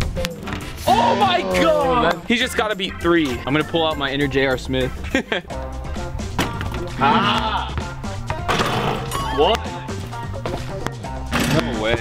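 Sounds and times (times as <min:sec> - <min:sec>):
background music: 0:00.0 - 0:12.0
person laughing: 0:04.8 - 0:05.6, 0:07.0 - 0:07.8.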